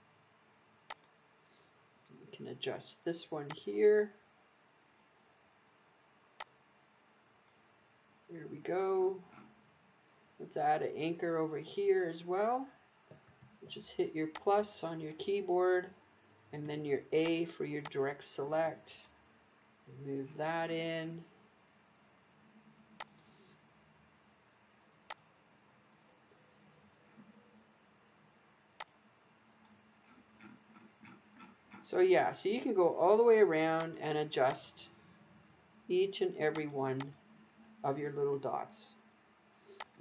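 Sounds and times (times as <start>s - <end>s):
computer mouse click: 0.9s - 1.2s, 6.4s - 6.6s, 14.3s - 14.6s, 23.0s - 23.3s, 28.8s - 29.0s, 33.8s - 34.6s, 36.5s - 37.2s, 39.7s - 40.0s
faint ticks: 0.9s - 1.2s, 6.4s - 6.6s, 39.7s - 40.0s.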